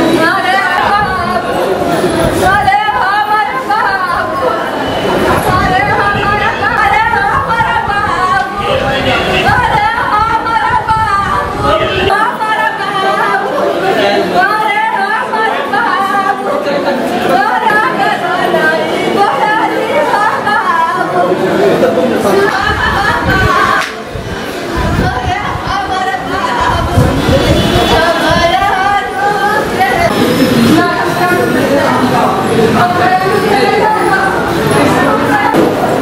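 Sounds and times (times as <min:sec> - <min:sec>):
chatter of people: 0:00.0 - 0:36.0.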